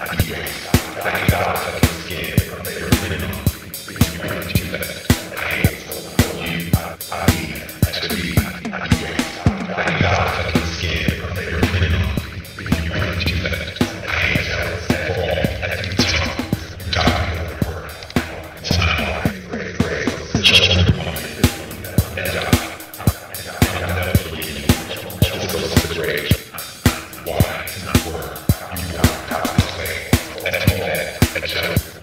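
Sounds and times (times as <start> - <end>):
drum-machine disco beat: 0.0 - 32.0
wordless wavering vocals: 0.0 - 32.0.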